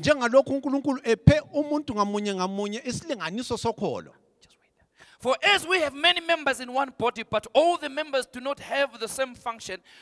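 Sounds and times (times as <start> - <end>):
man speaking: 0.0 - 4.2, 5.2 - 9.8.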